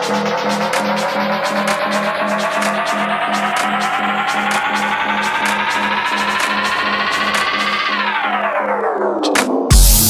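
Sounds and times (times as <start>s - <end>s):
steady hi-hat pattern: 0.0s - 8.0s, 9.7s - 10.0s
synth riser climbing in pitch: 0.0s - 10.0s.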